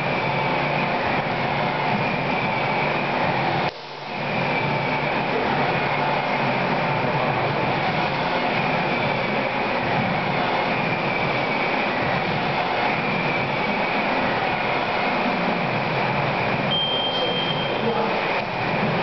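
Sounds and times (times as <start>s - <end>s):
rushing mechanical noise: 0.0s - 19.0s.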